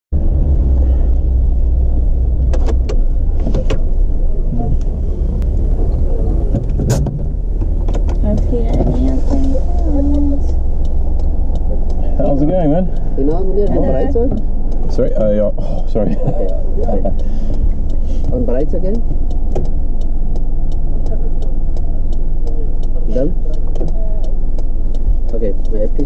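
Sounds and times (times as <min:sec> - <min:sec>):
car engine rumble: 0:00.1 - 0:26.0
sharp clicks and knocks: 0:02.0 - 0:26.0.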